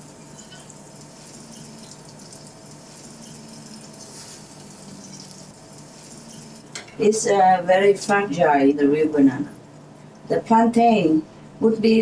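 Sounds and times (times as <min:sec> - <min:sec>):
banana frying in hot oil: 0:00.0 - 0:08.2.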